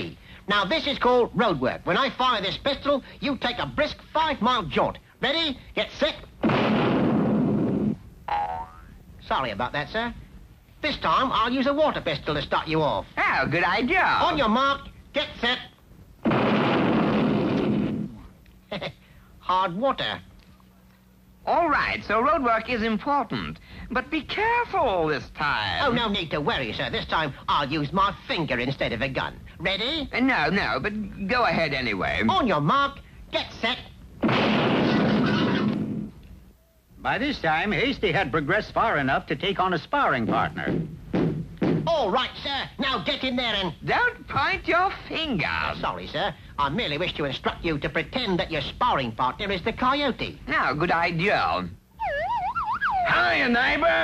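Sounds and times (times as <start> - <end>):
cartoon pistol blast: 6.4 - 8.4, 16.2 - 18.2, 34.2 - 36.1.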